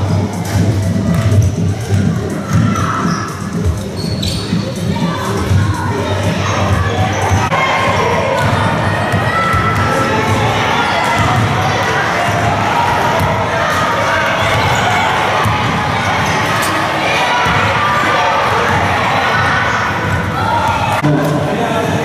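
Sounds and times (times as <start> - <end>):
children chattering and shouting: 0.0 - 22.0
basketballs bouncing on gym floor: 6.7 - 16.4
balls hitting backboards and rims: 7.1 - 21.2.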